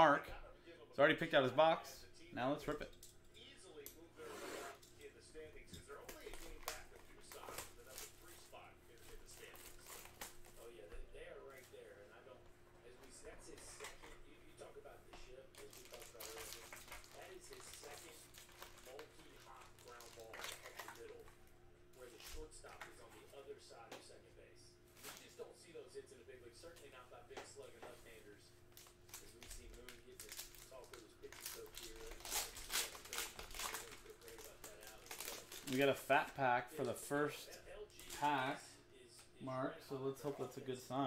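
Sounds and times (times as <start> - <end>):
cellophane crinkling and tearing: 6.0 - 10.7, 15.5 - 21.3, 28.7 - 36.1, 37.9 - 38.4
foil packs rustling: 15.5 - 21.2, 28.7 - 36.4.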